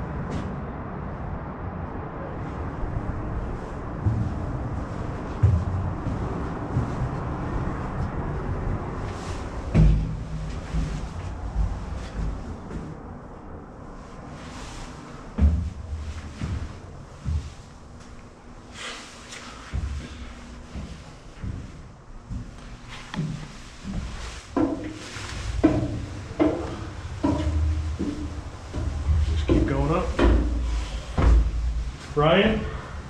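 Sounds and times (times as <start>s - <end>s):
thumps and knocks of movement: 9.1s - 13.1s, 23.1s - 32.0s.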